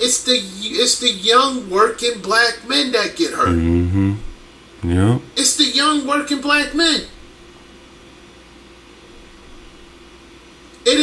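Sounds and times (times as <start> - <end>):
faint low hum: 3.2 - 7.6.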